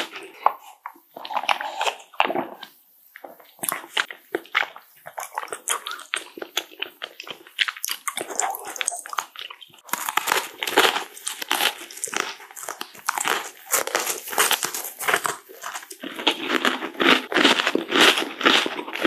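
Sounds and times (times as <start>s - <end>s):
crunching and chewing biscuit sticks: 0.0s - 19.0s.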